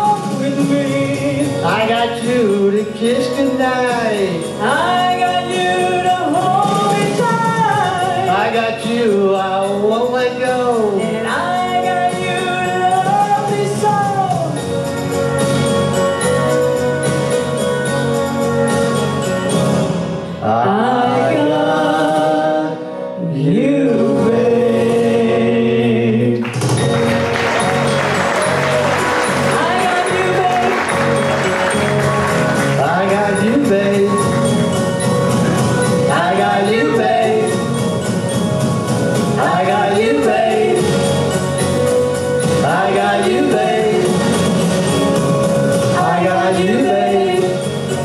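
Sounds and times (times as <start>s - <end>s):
man and woman singing duet: 0.0s - 14.6s, 20.4s - 26.5s, 29.3s - 31.2s, 32.6s - 34.5s, 36.0s - 37.9s, 39.3s - 41.3s, 42.5s - 44.5s, 45.8s - 48.0s
guitar: 0.0s - 48.0s
upright bass: 23.2s - 48.0s.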